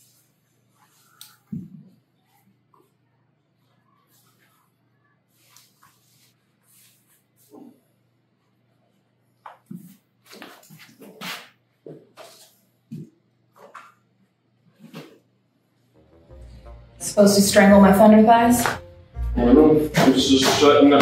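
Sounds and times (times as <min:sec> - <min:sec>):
short low whines: 0:16.0 - 0:21.0.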